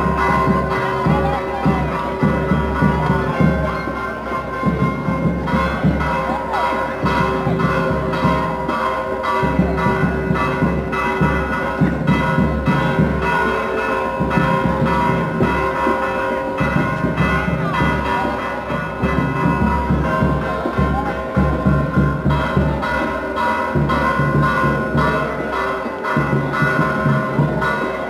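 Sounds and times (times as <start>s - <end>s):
church bells ringing: 0.0s - 28.0s.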